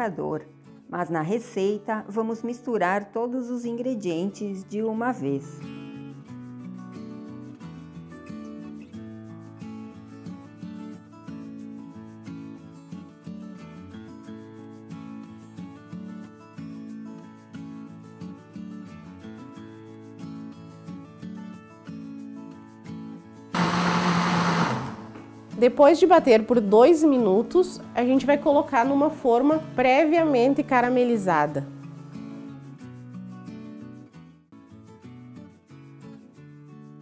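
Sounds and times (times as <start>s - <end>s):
electric blender running: 23.6s - 25.3s.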